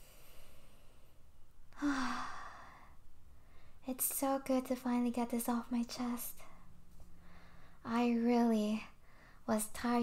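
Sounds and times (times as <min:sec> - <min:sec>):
woman sighing: 0:01.7 - 0:02.9.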